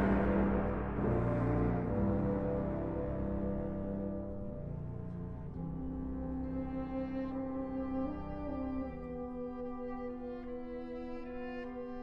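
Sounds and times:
wind band holding chords: 0:00.0 - 0:12.0.

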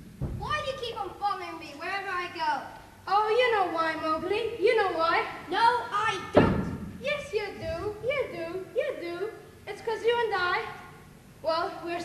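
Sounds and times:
heavy thud: 0:00.2 - 0:00.6, 0:06.3 - 0:07.9.

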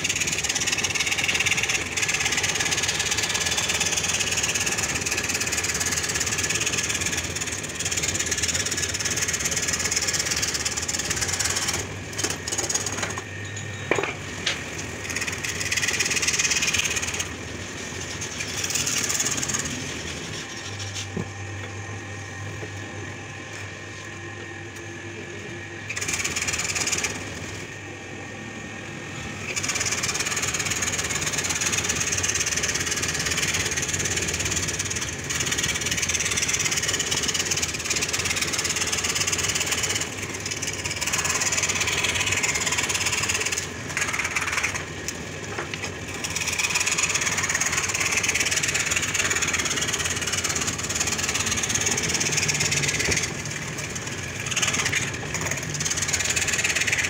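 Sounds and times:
scroll saw buzzing rasp: 0:00.0 - 0:21.1, 0:25.9 - 0:27.6, 0:29.3 - 0:57.0.

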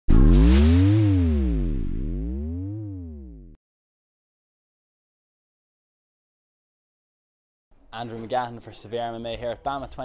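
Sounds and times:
synthesizer hit sweeping in pitch: 0:00.1 - 0:03.6.

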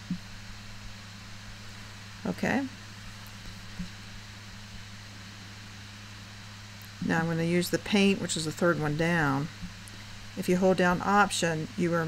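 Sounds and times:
recording hum and hiss: 0:00.0 - 0:12.0.

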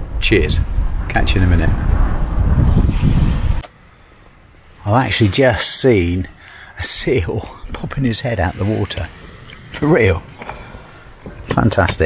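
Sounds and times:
faint outdoor background noise: 0:00.0 - 0:12.0
wind buffeting microphone: 0:00.0 - 0:12.0
man speaking: 0:04.8 - 0:10.4.

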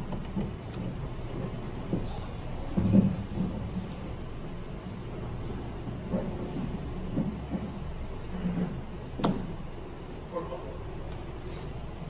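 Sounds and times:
dull thumps: 0:00.0 - 0:03.9
muffled room rumble: 0:00.0 - 0:12.0.

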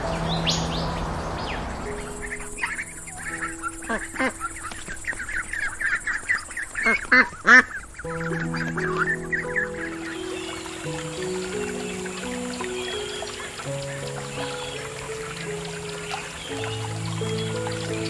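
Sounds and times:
background music: 0:00.0 - 0:18.0
ducks quacking: 0:02.0 - 0:18.0.

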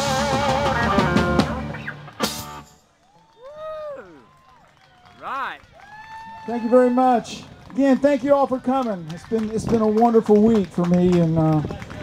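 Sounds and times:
people whooping: 0:03.0 - 0:07.4.

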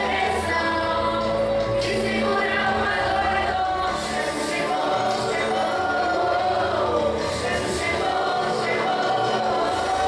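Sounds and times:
children's choir singing a hymn: 0:00.0 - 0:10.0.

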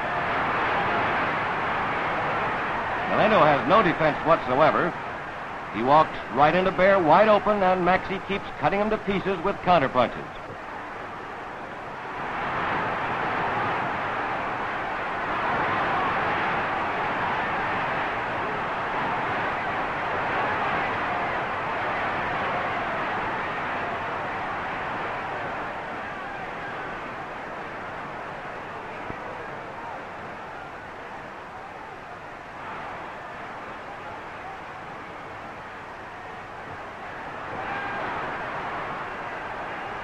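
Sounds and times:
crowd cheering and yelling: 0:00.0 - 0:40.0.

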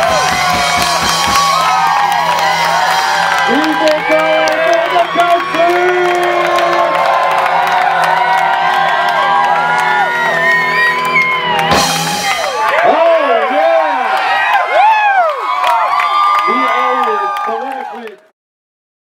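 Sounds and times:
live rock band: 0:00.0 - 0:13.0
crowd cheering and whooping: 0:00.0 - 0:18.3.

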